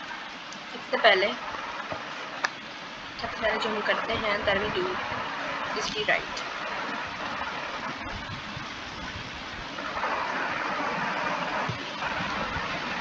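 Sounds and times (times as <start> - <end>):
steady rushing noise: 0.0 - 13.0.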